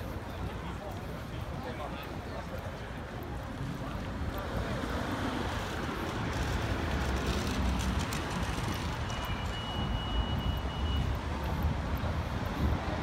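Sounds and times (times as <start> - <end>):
pedestrians talking: 0.0 - 13.0
traffic rumble: 0.0 - 13.0
wind buffeting microphone: 3.5 - 13.0.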